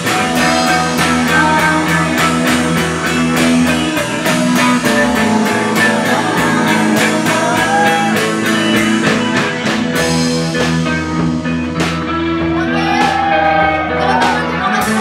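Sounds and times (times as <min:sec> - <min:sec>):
drum kit beat: 0:00.0 - 0:15.0
electric guitars: 0:00.0 - 0:15.0.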